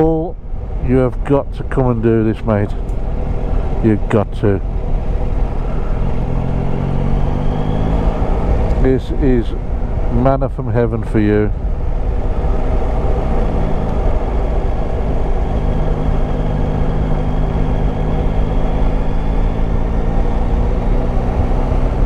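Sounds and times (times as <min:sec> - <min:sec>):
wind and road noise: 0:00.0 - 0:22.0.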